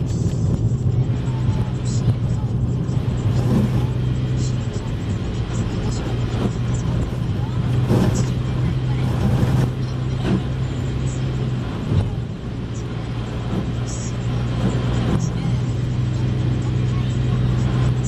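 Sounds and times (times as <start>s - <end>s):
car engine drone: 0.0s - 18.0s
road noise: 0.0s - 18.0s.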